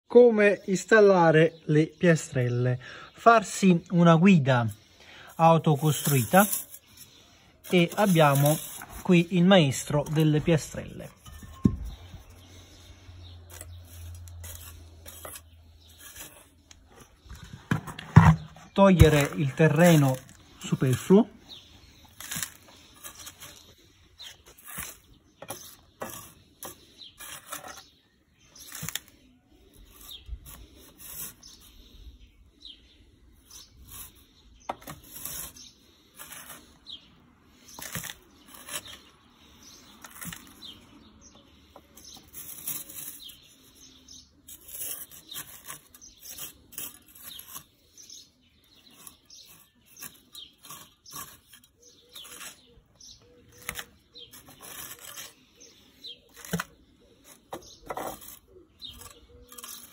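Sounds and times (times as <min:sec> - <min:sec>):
trowel scraping garden soil: 0:02.2 - 0:59.9.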